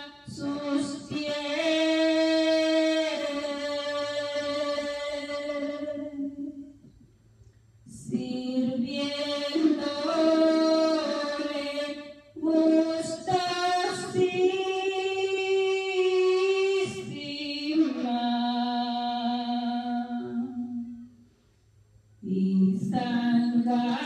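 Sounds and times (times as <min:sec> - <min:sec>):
woman singing a hymn unaccompanied: 0:00.0 - 0:06.9, 0:07.9 - 0:21.1, 0:22.2 - 0:24.0.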